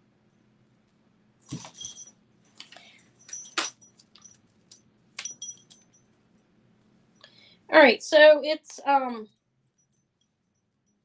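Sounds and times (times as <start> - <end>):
metal chain jingling: 1.4 - 6.1.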